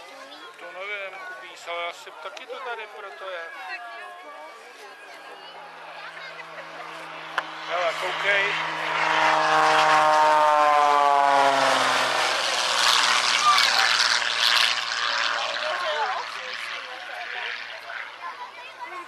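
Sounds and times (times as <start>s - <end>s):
propeller plane passing low: 5.4s - 19.0s
loud rushing roar: 5.6s - 18.1s.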